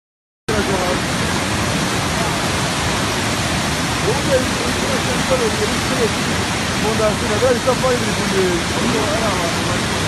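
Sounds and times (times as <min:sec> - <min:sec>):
floodwater rushing: 0:00.5 - 0:10.0.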